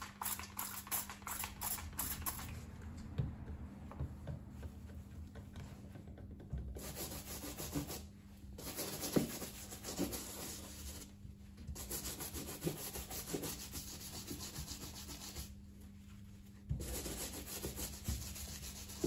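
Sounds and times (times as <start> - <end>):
brush scrubbing leather boot: 11.8 - 15.6, 16.8 - 19.0.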